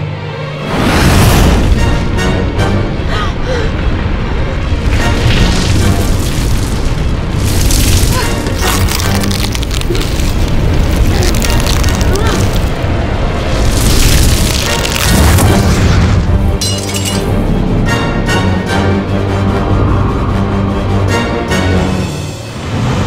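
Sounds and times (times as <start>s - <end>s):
dramatic film score: 0.0s - 23.0s
steady low rumble: 0.5s - 17.9s.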